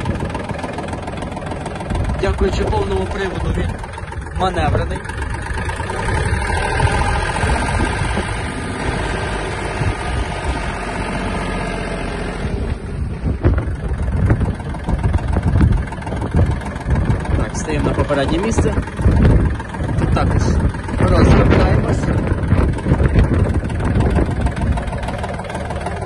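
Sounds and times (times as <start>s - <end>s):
tractor diesel engine running: 0.0s - 26.0s.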